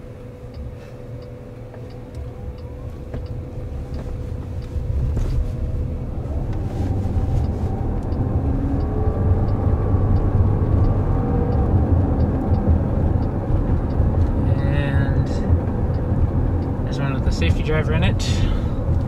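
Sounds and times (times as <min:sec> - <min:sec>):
faint whine: 0:00.0 - 0:19.0
low rumble of tyres: 0:00.0 - 0:19.0.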